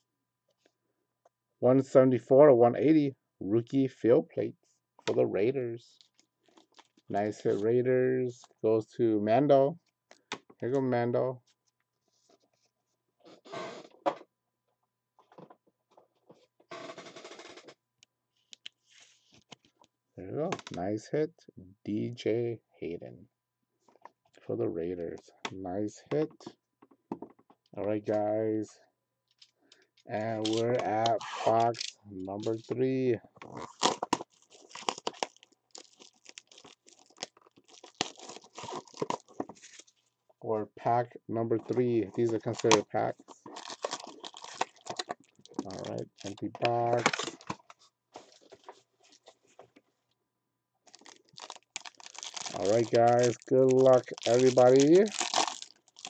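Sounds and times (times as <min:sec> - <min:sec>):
plastic sleeve rustling and crinkling: 0:06.0 - 0:07.6, 0:30.2 - 0:32.7, 0:33.5 - 0:40.1, 0:41.6 - 0:49.8, 0:50.9 - 0:56.0
plastic card sleeve scraping: 0:30.2 - 0:32.6, 0:33.4 - 0:40.0, 0:41.7 - 0:49.6, 0:50.9 - 0:56.0.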